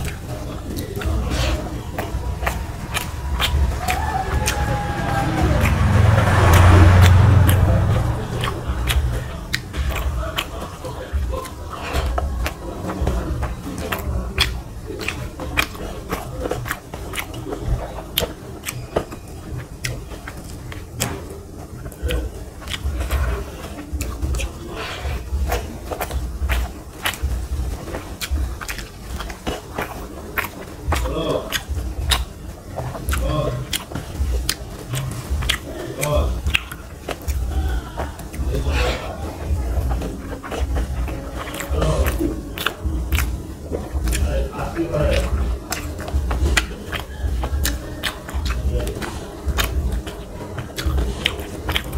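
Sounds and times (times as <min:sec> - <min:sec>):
close chewing: 0:00.0 - 0:51.9
wet mouth clicks: 0:00.0 - 0:51.9.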